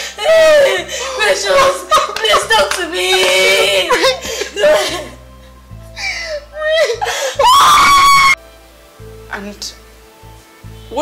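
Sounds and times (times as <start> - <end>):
low background music: 0.0 - 11.0
woman screaming in grief: 0.2 - 5.1, 6.6 - 8.4.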